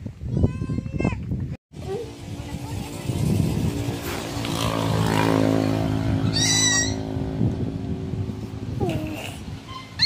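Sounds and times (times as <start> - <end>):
high-pitched animal call: 6.2 - 7.1, 9.7 - 10.0.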